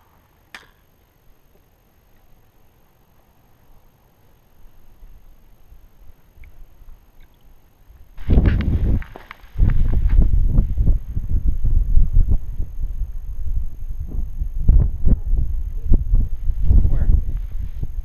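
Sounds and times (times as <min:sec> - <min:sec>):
footsteps on rocky ground: 0:08.2 - 0:10.6
wind buffeting microphone: 0:08.2 - 0:18.0.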